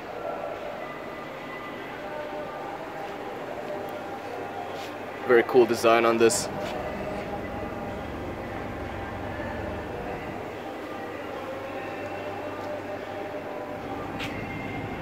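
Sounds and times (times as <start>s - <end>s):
mechanical hum and rumble: 6.2s - 10.6s, 13.8s - 15.0s.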